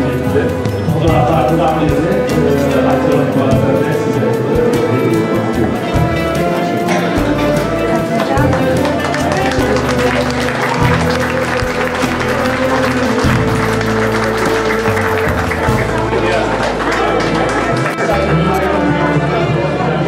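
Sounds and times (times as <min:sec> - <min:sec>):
crowd voices: 0:00.0 - 0:20.0
music with shifting bass line: 0:00.0 - 0:20.0.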